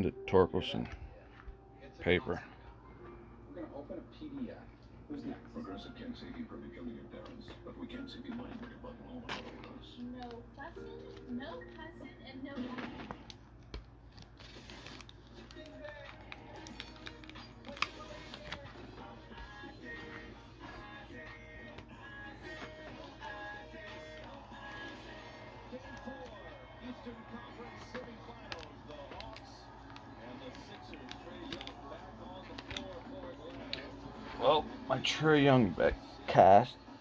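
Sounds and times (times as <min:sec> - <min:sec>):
background music: 0:00.0 - 0:13.6, 0:14.4 - 0:37.0
faint background speech: 0:00.8 - 0:13.4, 0:23.4 - 0:37.0
trading cards clicking: 0:13.2 - 0:19.5, 0:24.1 - 0:34.0.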